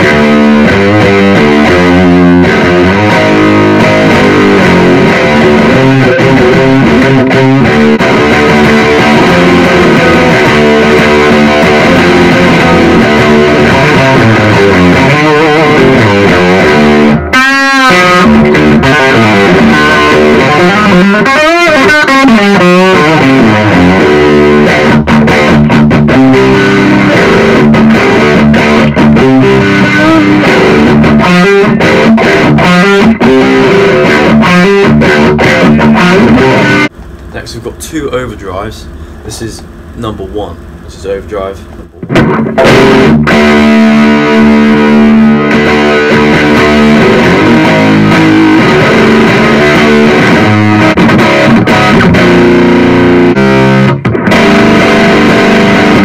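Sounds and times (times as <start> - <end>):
distorted electric guitar riffs: 0.0 - 56.0.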